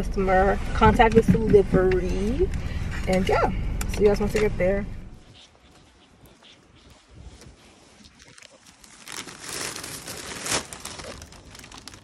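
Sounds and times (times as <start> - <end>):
plastic bag rustling: 7.8 - 12.0.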